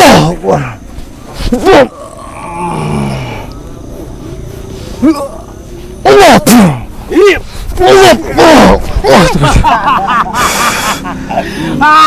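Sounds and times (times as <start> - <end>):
man yelling: 0.0 - 0.8, 6.0 - 9.4, 11.8 - 12.0
man growling: 1.5 - 3.6, 5.0 - 9.8.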